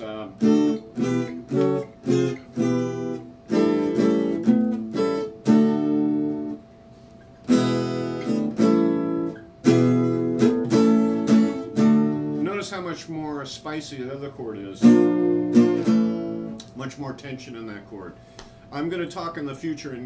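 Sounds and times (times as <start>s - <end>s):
acoustic guitar strummed chords: 0.0s - 6.6s, 7.4s - 13.0s, 14.7s - 16.6s.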